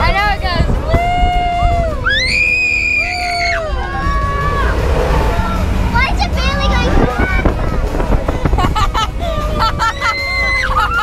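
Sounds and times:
wind rumble on microphone: 0.0 - 11.0
riders screaming and whooping: 0.8 - 5.9, 7.1 - 11.0.

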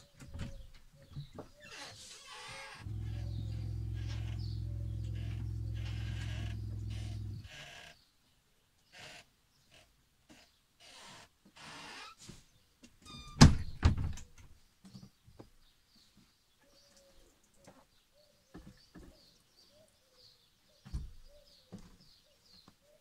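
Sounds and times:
electric water pump humming: 2.8 - 7.5.

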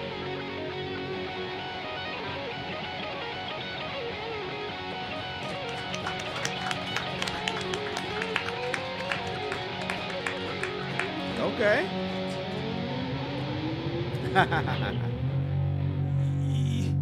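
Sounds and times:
electric guitars playing: 0.0 - 16.5
sharp picked guitar notes: 6.8 - 16.1.

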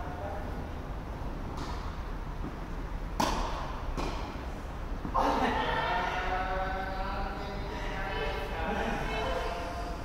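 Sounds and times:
steady low hum: 0.0 - 10.0
tennis ball struck by racket: 3.2 - 4.4.

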